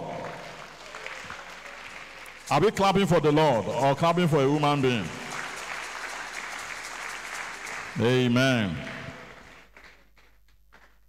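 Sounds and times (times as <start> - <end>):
congregation applause: 0.0 - 11.0.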